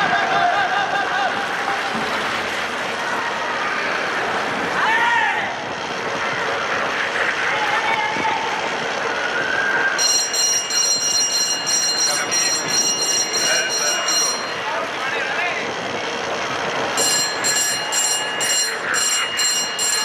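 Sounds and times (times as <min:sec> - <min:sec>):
crowd noise: 0:00.0 - 0:20.0
bell rung rapidly: 0:10.0 - 0:15.0, 0:16.9 - 0:20.0.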